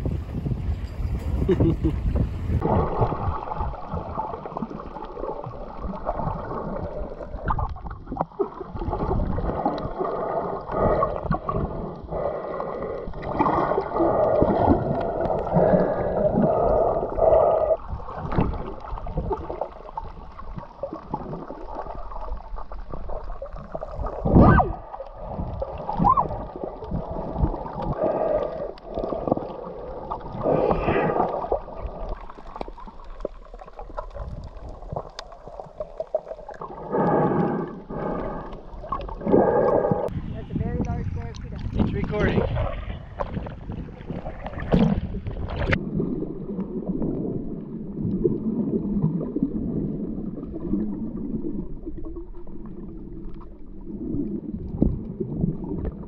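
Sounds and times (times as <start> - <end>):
muffled underwater water gurgling: 0.0 - 56.0.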